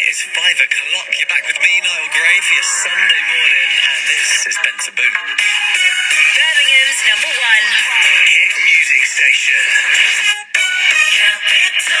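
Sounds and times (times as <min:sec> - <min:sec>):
radio jingle music: 0:00.0 - 0:12.0.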